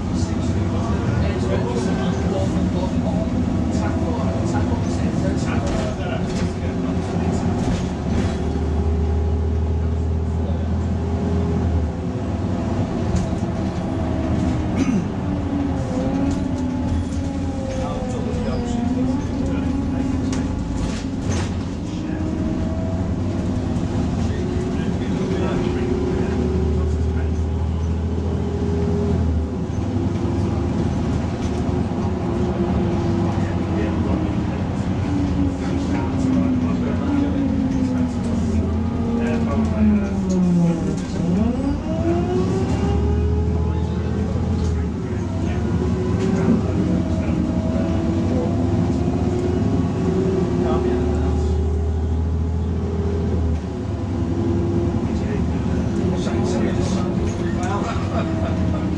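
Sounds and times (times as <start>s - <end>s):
bus diesel engine: 0.0s - 58.9s
road rumble: 0.0s - 58.9s.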